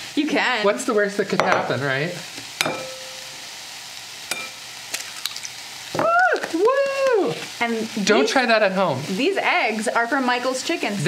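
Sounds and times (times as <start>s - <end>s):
vegetables sizzling in oil: 0.0s - 11.0s
egg cracking over bowl: 4.3s - 7.1s
person saying ooh in surprise: 6.0s - 7.4s.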